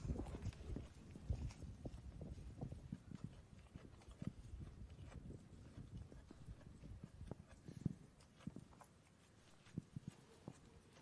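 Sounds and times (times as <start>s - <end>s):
goat chewing leafy weeds: 0.0s - 11.0s.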